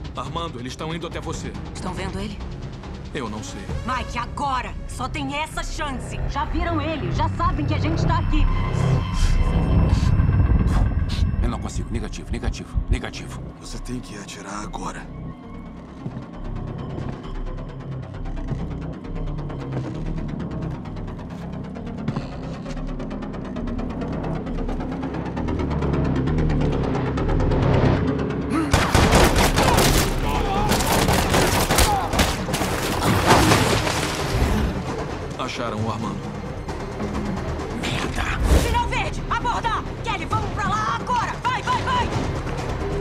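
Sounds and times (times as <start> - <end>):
tense film score with low pulses: 0.0 - 43.0
rapid automatic gunfire: 28.8 - 32.5.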